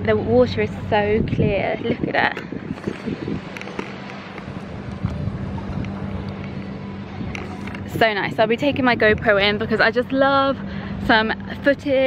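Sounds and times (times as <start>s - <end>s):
low mechanical hum: 0.0s - 12.0s
water noise: 0.0s - 12.0s
wind hiss: 0.9s - 9.8s.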